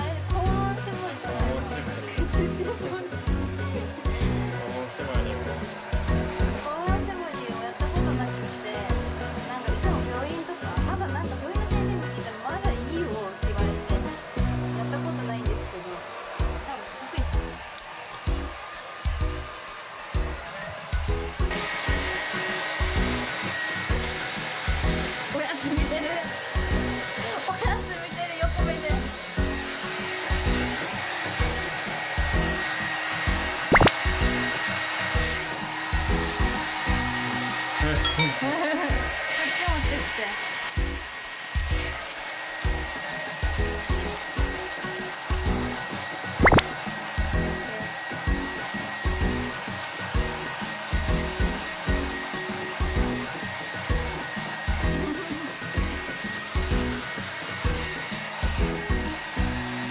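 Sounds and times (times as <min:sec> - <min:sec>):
background music with steady beat: 0:00.0 - 0:39.2, 0:39.8 - 0:59.9
hair dryer blowing: 0:00.0 - 0:59.9.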